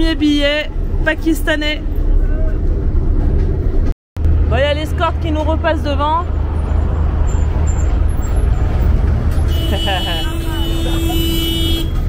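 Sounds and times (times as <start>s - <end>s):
diesel engine drone: 0.0s - 12.0s
road traffic passing: 0.0s - 12.0s
vehicle horn long note: 9.5s - 12.0s.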